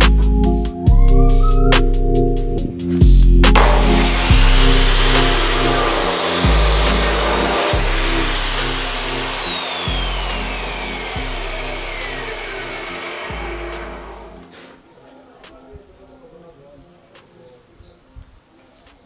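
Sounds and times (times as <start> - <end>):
cutoff saw motor whining: 3.6 - 14.4.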